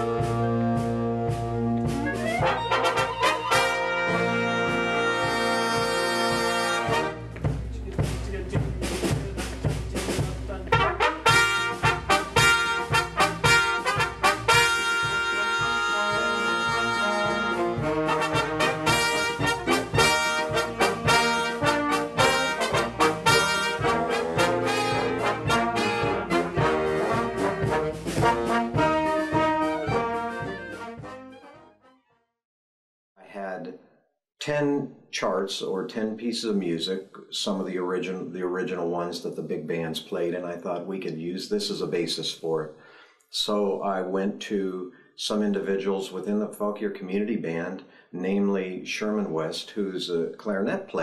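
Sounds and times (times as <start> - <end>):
big band brass playing swing: 0.0 - 31.9.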